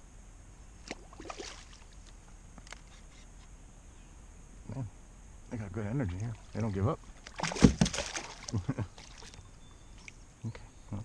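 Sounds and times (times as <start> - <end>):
fish splashing at water surface: 0.9 - 1.8, 7.2 - 9.4
knocks against kayak: 7.3 - 8.2.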